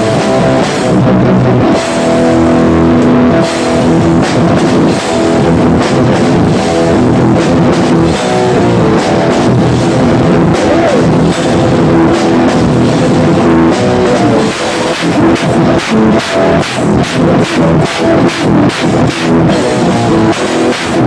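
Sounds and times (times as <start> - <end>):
drum kit snare and cymbals: 0.0 - 21.0
rock band playing: 0.0 - 21.0.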